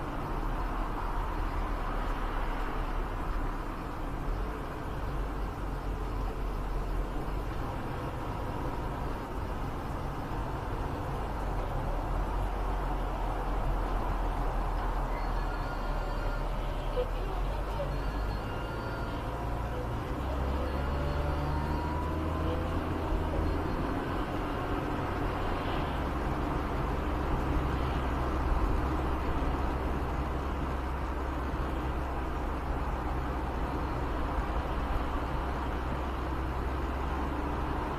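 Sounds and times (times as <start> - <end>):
car engine and road noise: 0.0 - 37.9.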